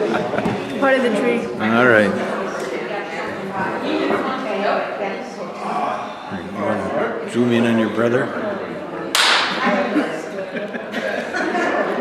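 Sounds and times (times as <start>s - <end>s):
high-five palm slap: 9.1s - 9.6s.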